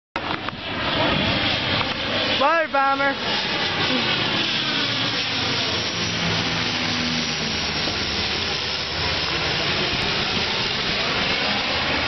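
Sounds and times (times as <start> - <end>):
airplane engine drone overhead: 0.2 - 12.0.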